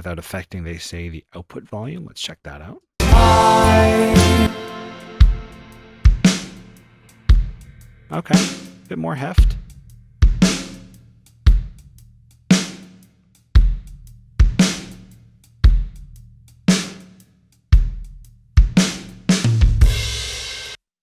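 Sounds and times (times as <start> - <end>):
distorted drum kit beat: 3.0 - 17.2, 17.8 - 20.8.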